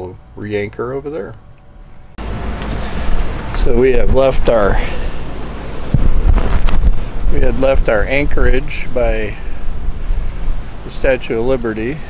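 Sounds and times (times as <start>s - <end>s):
wind buffeting microphone: 2.9s - 12.0s.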